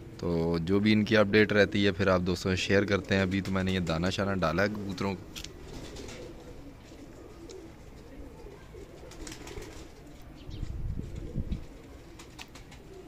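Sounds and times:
pigeons cooing: 0.0s - 13.0s.

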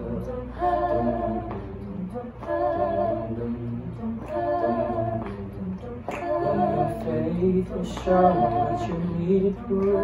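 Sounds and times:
group singing a cappella harmony: 0.0s - 10.0s.

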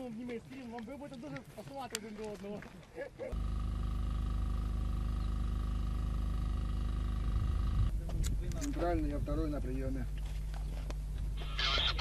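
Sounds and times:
engine droning: 3.3s - 8.1s.

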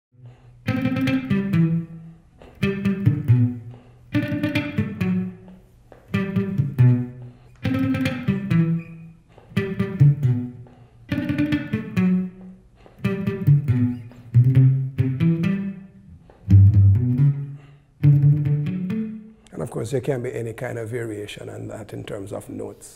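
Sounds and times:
electric guitar reggae riff: 0.2s - 19.5s.

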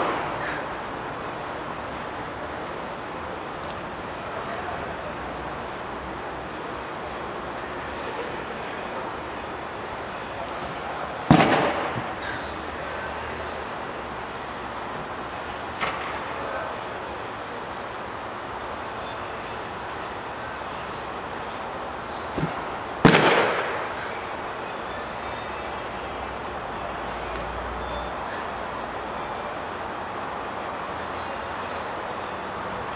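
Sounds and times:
baseball smacking into glove: 22.3s - 23.5s.

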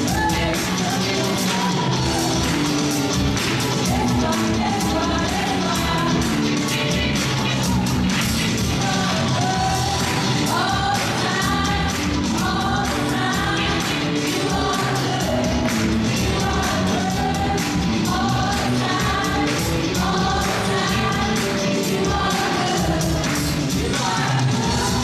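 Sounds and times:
bass: 0.0s - 25.0s
drum kit beat: 0.0s - 25.0s
women singing in harmony: 3.8s - 7.8s, 8.6s - 25.0s.

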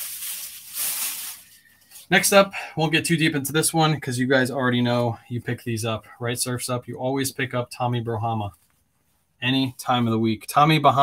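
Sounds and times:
garment rustling: 0.0s - 2.2s.

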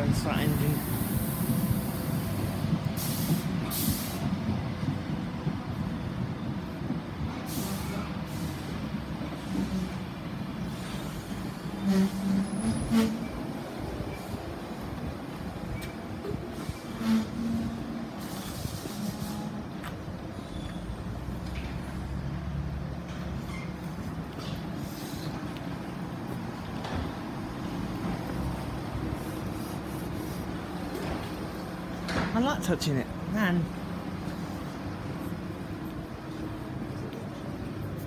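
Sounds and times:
train rumble and hum: 0.0s - 38.0s.

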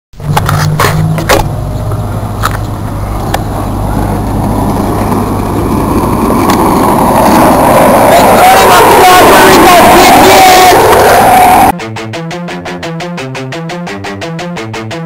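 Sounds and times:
skateboard wheels rolling on asphalt: 0.2s - 11.7s.

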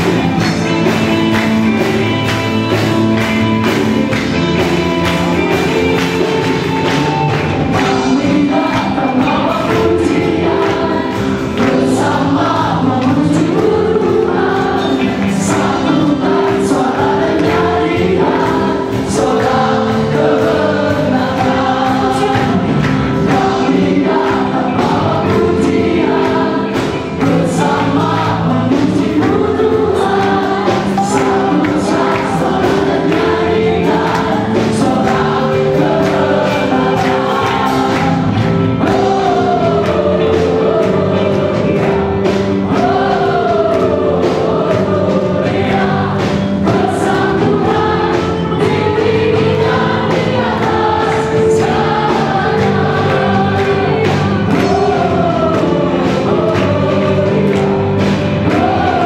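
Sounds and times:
gospel group singing: 0.0s - 59.0s
live band playing: 0.0s - 59.0s.

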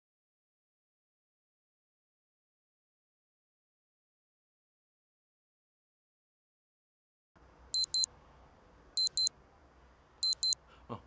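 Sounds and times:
electronic alarm beeping: 7.8s - 8.1s, 9.0s - 9.3s, 10.2s - 10.6s.

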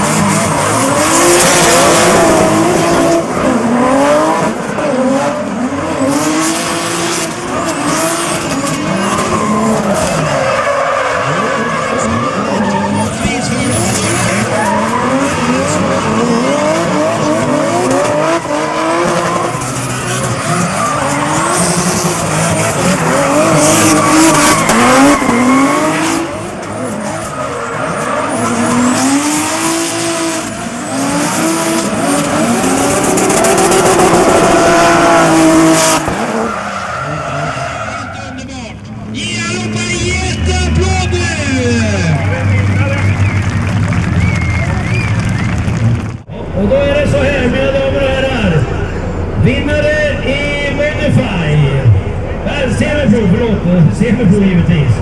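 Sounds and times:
tyres skidding on asphalt: 0.0s - 50.8s
car engines revving: 0.0s - 55.0s.

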